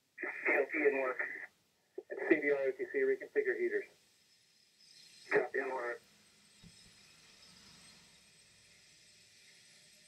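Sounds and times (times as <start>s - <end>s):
man replying over radio: 0.2s - 3.8s, 5.3s - 6.0s.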